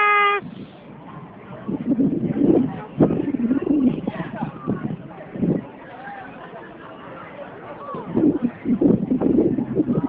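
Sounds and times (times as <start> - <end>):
person vocalizing with wavering pitch: 0.0 - 0.4.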